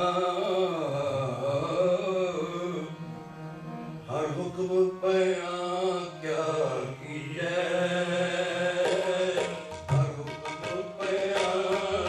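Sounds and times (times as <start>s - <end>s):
man singing a hymn: 0.0s - 3.0s, 4.1s - 12.0s
harmonium drone: 0.0s - 12.0s.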